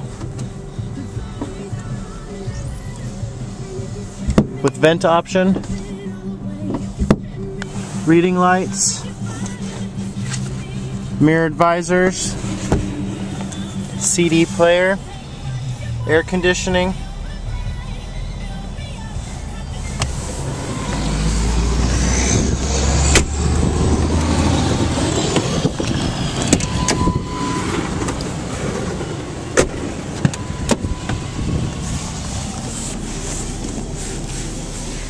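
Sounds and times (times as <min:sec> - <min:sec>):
low rumble: 0:05.6 - 0:35.0
handling noise: 0:11.6 - 0:14.9
short steady beep: 0:26.7 - 0:27.7, 0:30.4 - 0:31.4.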